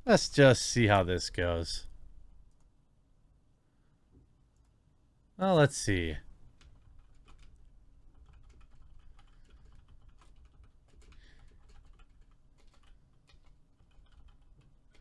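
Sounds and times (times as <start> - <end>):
typing on computer keyboard: 6.6 - 15.0.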